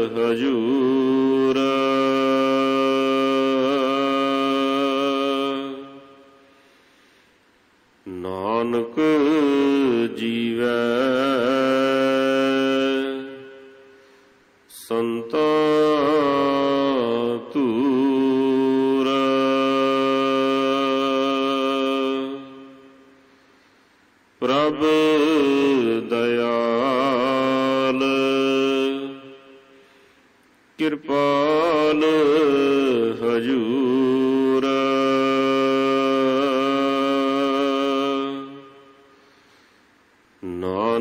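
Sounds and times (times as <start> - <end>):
man chanting: 0.0 - 6.5, 8.0 - 14.0, 14.7 - 23.2, 24.4 - 29.8, 30.8 - 39.4, 40.4 - 41.0.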